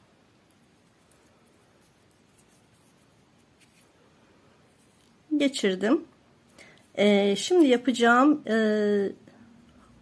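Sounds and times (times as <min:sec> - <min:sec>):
faint thread rustling: 0:00.2 - 0:05.3.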